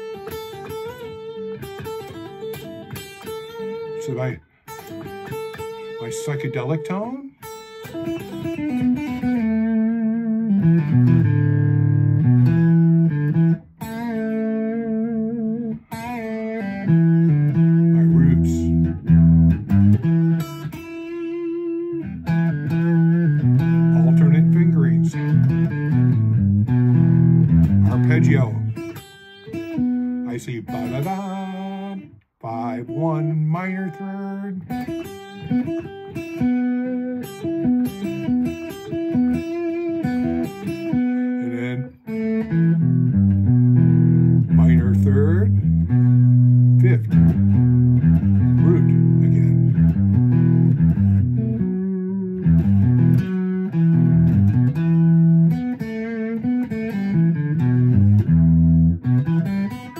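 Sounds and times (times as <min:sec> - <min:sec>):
electric guitar blues phrases: 0:00.0 - 0:59.9.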